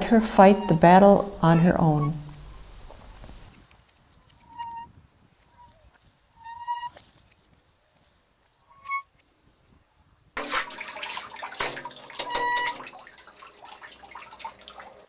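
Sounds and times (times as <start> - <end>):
windlass and chain squeaking: 0.0 - 3.2, 4.2 - 7.2, 8.7 - 9.2, 12.2 - 12.8
water splashing and sloshing: 10.4 - 15.0.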